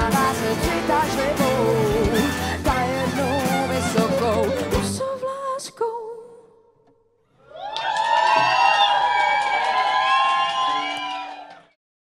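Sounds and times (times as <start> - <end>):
audience cheering and whooping: 7.4 - 11.8.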